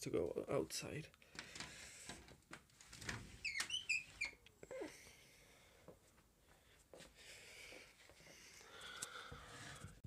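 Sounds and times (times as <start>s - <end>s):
door high squeaks: 3.4s - 4.4s.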